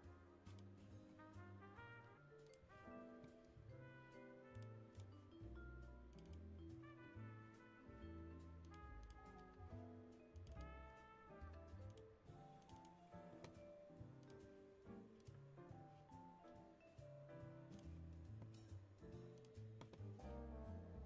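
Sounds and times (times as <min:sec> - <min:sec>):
faint background music: 0:00.0 - 0:21.0.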